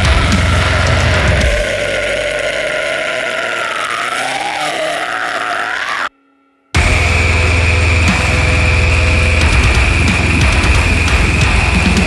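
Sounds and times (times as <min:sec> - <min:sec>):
pounding drums and bass: 0:00.0 - 0:02.8, 0:06.8 - 0:12.0
distorted guitar note bending: 0:00.0 - 0:12.0.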